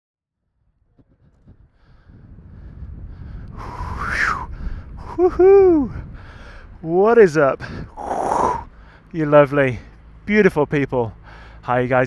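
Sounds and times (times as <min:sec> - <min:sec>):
wind rumbling on microphone: 0:00.6 - 0:08.7.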